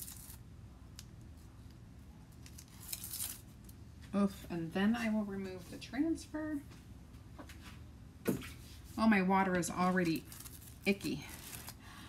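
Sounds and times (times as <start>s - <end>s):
tape peeling and crumpling: 0.0s - 3.8s, 9.8s - 11.8s.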